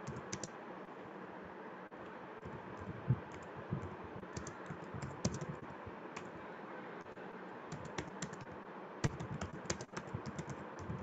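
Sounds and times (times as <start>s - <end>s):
keyboard keystrokes clicking: 0.0s - 0.5s, 2.8s - 5.6s, 7.7s - 11.0s.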